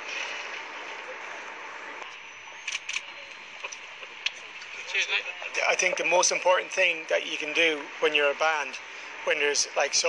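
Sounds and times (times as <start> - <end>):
open-air hiss: 0.0 - 10.0.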